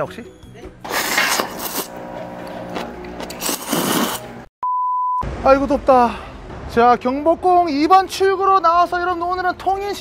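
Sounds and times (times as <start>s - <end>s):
noodles being slurped: 0.9s - 4.4s.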